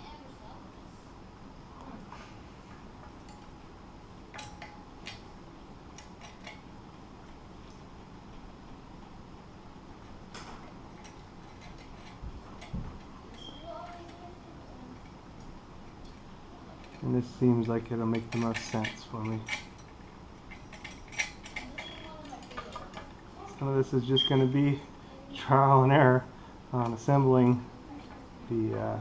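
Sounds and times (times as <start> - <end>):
faint steady hiss: 0.0 - 29.0
metal brackets and bolts clinking: 3.0 - 3.6, 4.3 - 5.4, 6.0 - 7.4, 10.4 - 14.2, 16.8 - 24.6.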